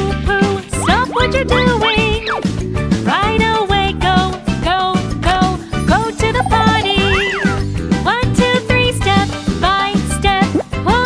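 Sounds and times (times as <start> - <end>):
children's song: 0.0 - 11.0.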